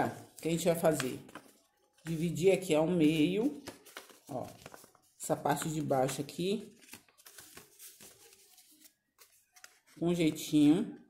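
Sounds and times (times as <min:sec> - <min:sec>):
paper rustling: 0:00.0 - 0:10.7.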